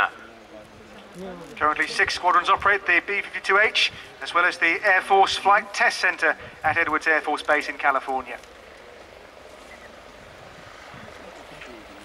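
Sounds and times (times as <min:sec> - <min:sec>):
distant jet aircraft rumble: 0:00.0 - 0:12.0
faint voices: 0:00.0 - 0:12.0.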